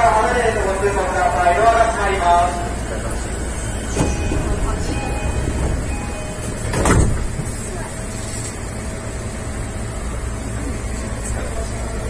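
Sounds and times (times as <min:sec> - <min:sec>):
low hum of train equipment: 0:00.0 - 0:12.0.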